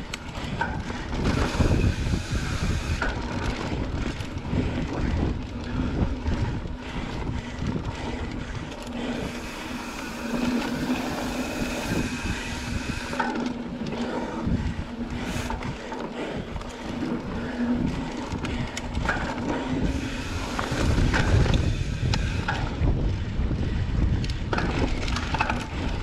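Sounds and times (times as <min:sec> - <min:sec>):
bike rattling over bumps: 0:00.0 - 0:26.0
bike tyres rolling on dirt: 0:00.0 - 0:26.0.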